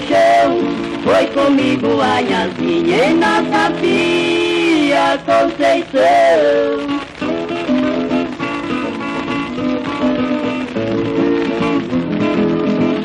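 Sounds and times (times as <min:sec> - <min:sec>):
plucked acoustic guitars melody: 0:00.0 - 0:13.0.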